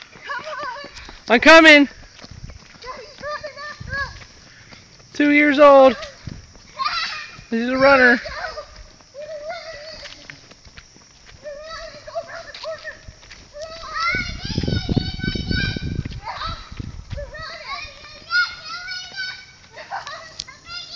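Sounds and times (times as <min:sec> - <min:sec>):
children calling out: 0:00.0 - 0:01.9, 0:02.8 - 0:10.5, 0:11.3 - 0:20.9
camera jostling rumble and knocking: 0:02.0 - 0:04.4, 0:06.0 - 0:06.7.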